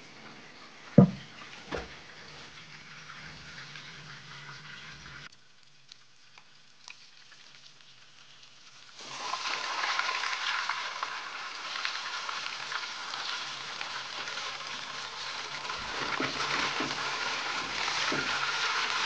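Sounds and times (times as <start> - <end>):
fish sizzling in hot oil: 2.0 - 19.0.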